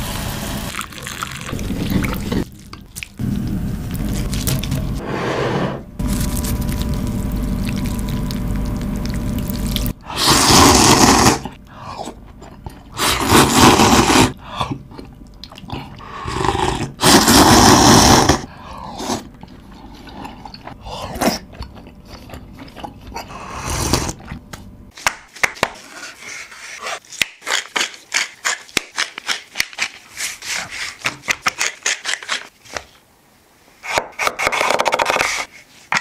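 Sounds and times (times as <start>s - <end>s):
loud noodle slurping: 10.0s - 12.2s, 12.9s - 14.4s, 16.0s - 21.5s, 23.1s - 24.3s.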